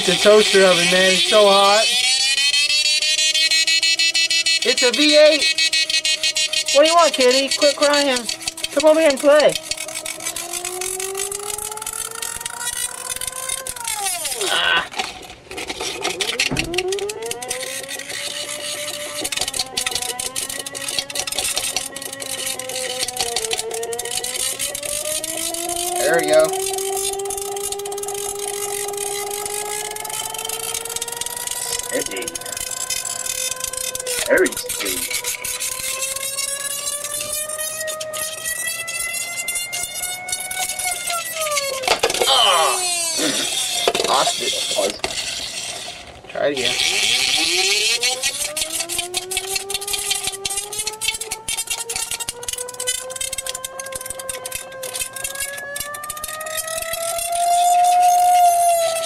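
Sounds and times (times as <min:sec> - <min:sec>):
electric motor whining: 0:00.0 - 0:59.0
sharp clicks: 0:00.0 - 0:59.0.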